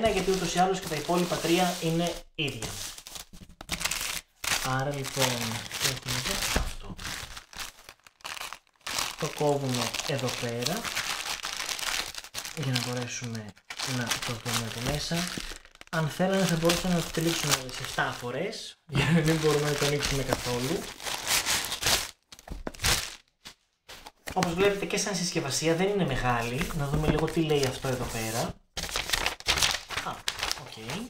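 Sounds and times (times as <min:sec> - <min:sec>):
plastic mailer bag crinkling: 0:00.0 - 0:18.3, 0:19.0 - 0:23.3, 0:26.2 - 0:31.0.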